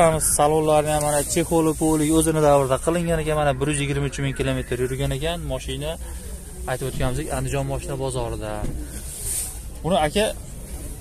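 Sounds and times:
man talking: 0.0s - 6.0s
steady low hum: 0.0s - 11.0s.

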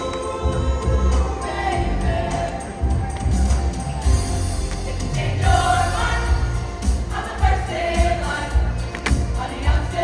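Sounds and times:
choir singing in parts: 0.0s - 10.0s.

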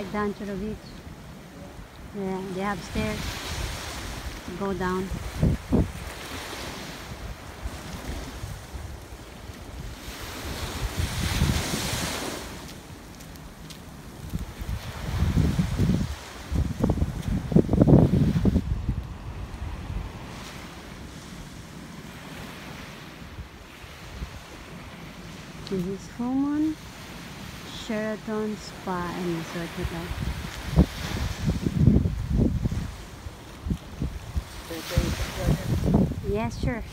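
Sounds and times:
wind buffeting microphone: 0.0s - 22.4s, 29.0s - 36.9s
small waves washing onto sand: 0.0s - 36.9s.

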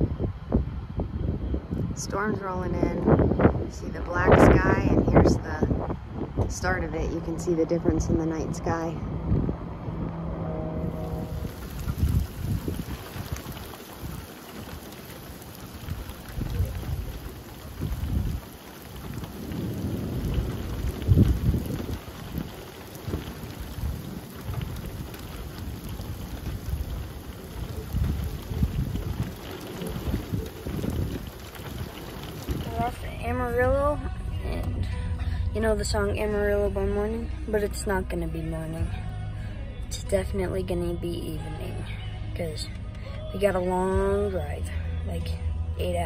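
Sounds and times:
gusty wind on microphone: 0.0s - 37.4s
rain hiss: 10.8s - 36.6s.

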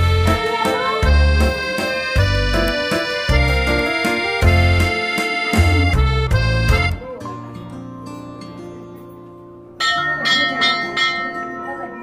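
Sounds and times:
music of sustained notes: 0.0s - 12.0s
bell struck and ringing: 9.8s - 12.0s.

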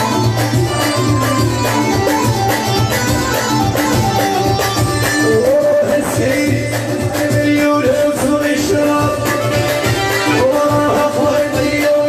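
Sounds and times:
electronic keyboard melody: 0.0s - 12.0s
fast percussion rhythm: 0.0s - 12.0s.

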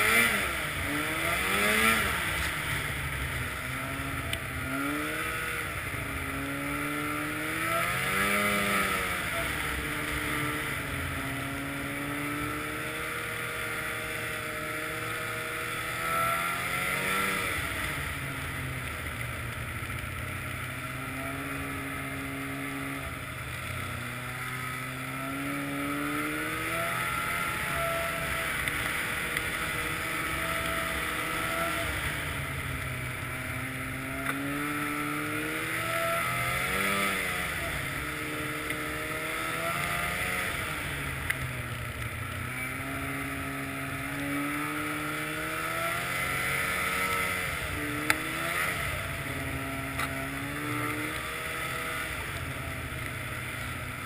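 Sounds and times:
snowmobile engine running: 0.0s - 54.0s.

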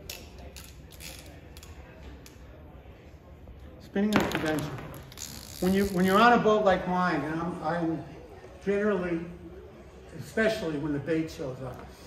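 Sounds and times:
fishing reel creaking: 0.0s - 1.8s, 5.1s - 6.2s
fishing reel clicks: 0.0s - 2.4s.

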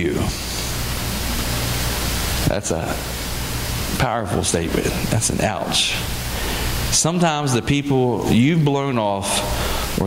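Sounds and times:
low electrical hum: 0.0s - 10.0s
steady hiss: 0.0s - 10.0s.

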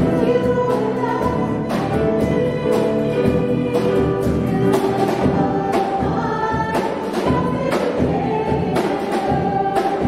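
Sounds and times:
drums and cymbals: 0.0s - 10.0s
guitar: 0.0s - 10.0s
piano: 0.0s - 10.0s
voices singing: 0.0s - 10.0s.

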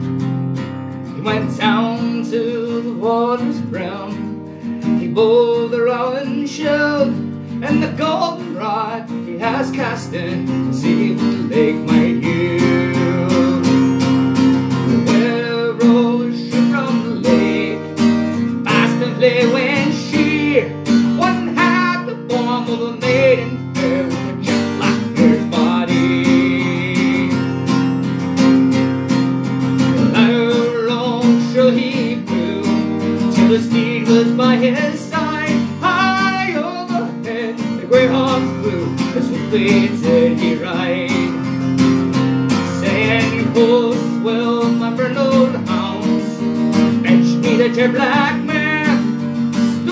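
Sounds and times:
acoustic guitar strumming: 0.0s - 49.9s.

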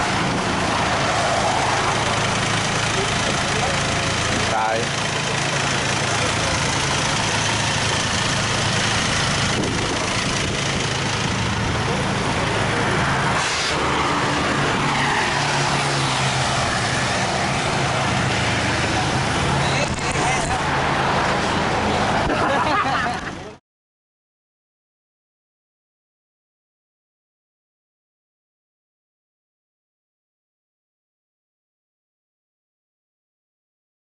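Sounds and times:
road traffic noise: 0.0s - 23.6s
vehicle engines running: 0.0s - 23.6s.

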